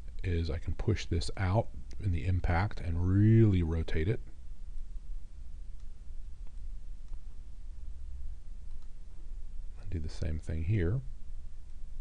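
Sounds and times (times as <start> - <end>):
steady low hum: 0.0 - 12.0
man speaking: 0.2 - 4.2, 9.8 - 11.1
computer mouse clicks: 8.6 - 9.0.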